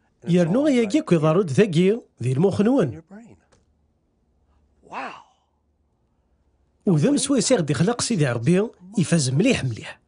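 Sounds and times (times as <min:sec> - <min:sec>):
person speaking: 0:00.1 - 0:03.6
man sighing: 0:04.8 - 0:05.6.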